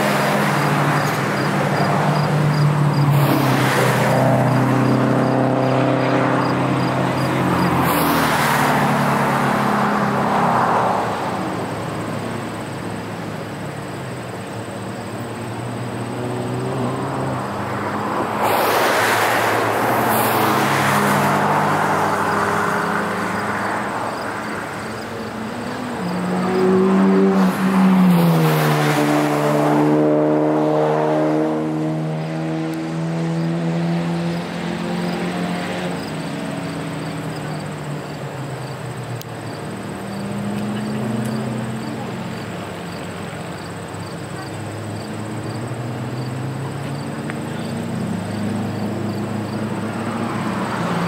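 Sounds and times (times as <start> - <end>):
racing car engines passing by: 0.0 - 51.0.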